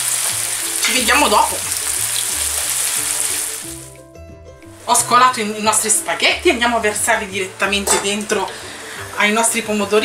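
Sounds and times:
tomatoes sizzling in hot oil: 0.0s - 4.0s, 4.6s - 10.0s
soft background music: 0.0s - 10.0s.

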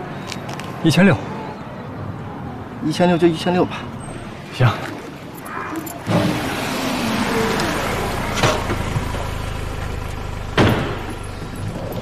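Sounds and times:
car road noise: 0.0s - 12.0s
sharp knocks: 10.6s - 11.2s.

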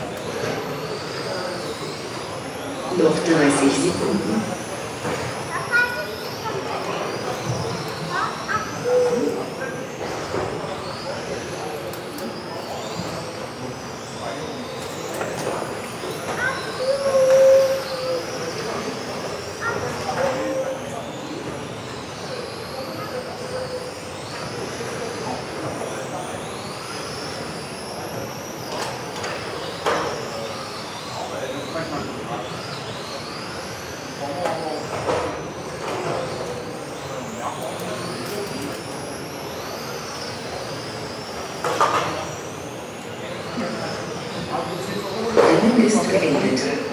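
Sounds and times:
murmur of voices: 0.0s - 46.9s
rc car motors whining: 0.0s - 46.9s.

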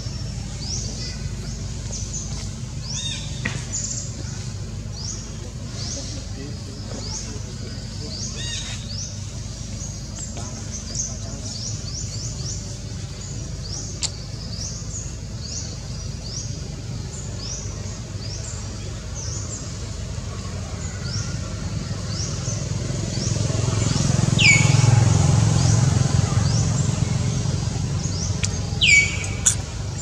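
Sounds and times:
bird chirping: 20.8s - 30.0s
falling whistled bird calls: 28.3s - 29.6s.

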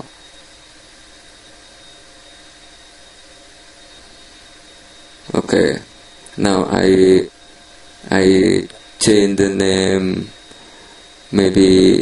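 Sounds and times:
faint high-pitched tone: 0.0s - 12.0s
room tone hiss and hum: 0.0s - 12.0s.

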